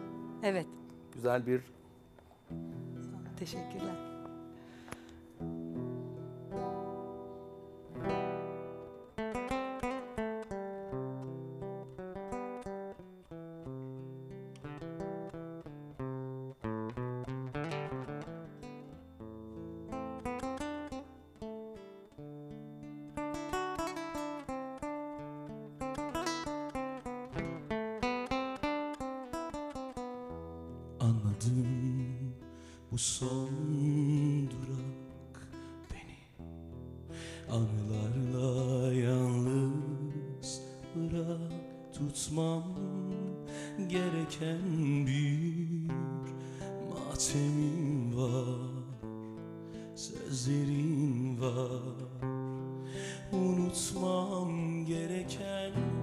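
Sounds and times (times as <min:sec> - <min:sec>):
acoustic guitar playing: 0:00.0 - 0:56.0.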